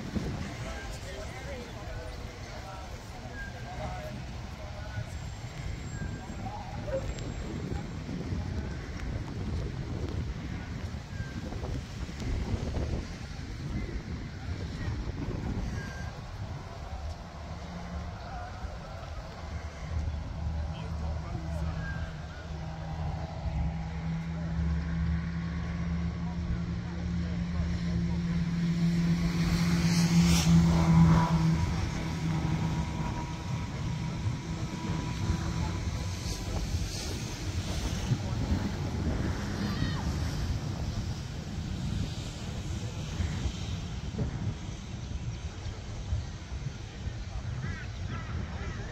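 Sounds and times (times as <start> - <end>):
engine hum: 0.0 - 48.9
wind on microphone: 0.0 - 48.9.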